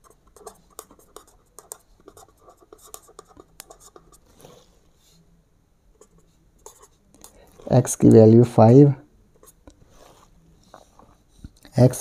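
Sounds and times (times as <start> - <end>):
pen writing on paper: 0.0 - 4.6, 6.0 - 7.4.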